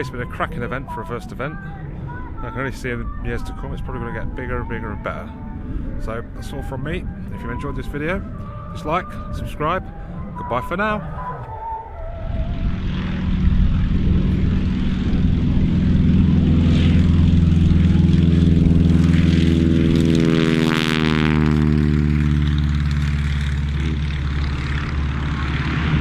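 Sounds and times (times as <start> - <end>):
propeller aircraft flying past: 0.0 - 26.0.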